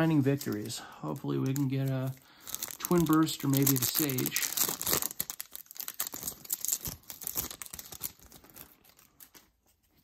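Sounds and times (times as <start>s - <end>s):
foil wrapper crinkling and tearing: 0.0s - 10.0s.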